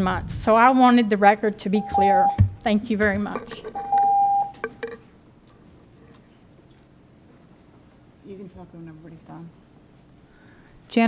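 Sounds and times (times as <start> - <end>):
electronic timer beep: 1.8 - 2.4, 3.8 - 4.8.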